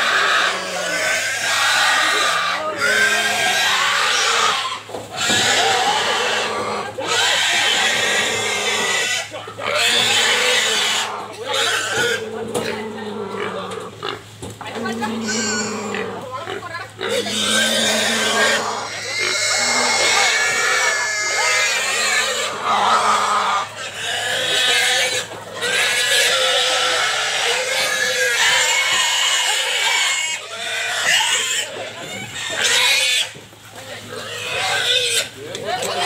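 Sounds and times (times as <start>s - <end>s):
pig squealing: 0.0s - 33.4s, 34.1s - 36.0s.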